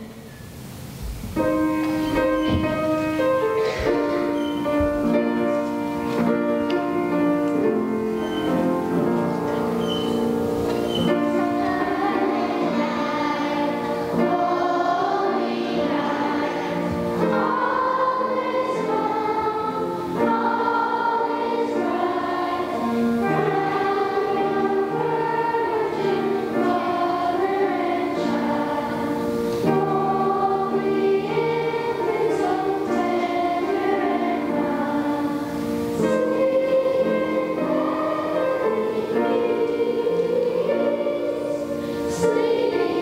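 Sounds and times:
children's choir singing: 0.0 - 43.0.

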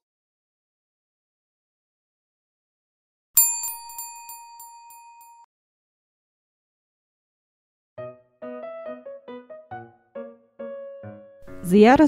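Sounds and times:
bright bell ding: 3.4 - 5.4.

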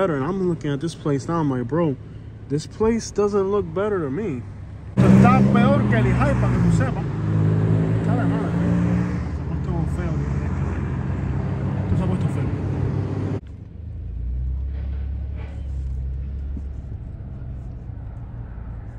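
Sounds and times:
car engines passing by: 0.0 - 18.9
distant traffic rumble: 0.0 - 18.9.

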